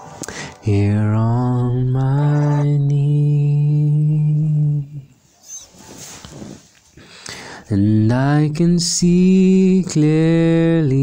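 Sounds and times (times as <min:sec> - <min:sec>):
person singing a long low note: 0:00.0 - 0:05.1.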